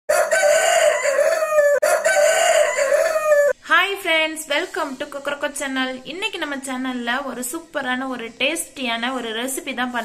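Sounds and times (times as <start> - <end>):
rooster crowing: 0.1 - 3.6.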